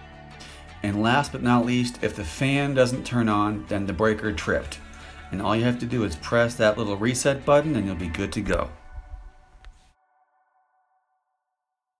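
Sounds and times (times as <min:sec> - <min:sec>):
low rumbling wind: 0:08.8 - 0:09.6.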